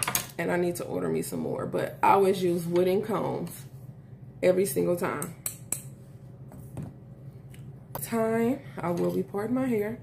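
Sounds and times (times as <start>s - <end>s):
steady low hum: 0.3s - 10.0s.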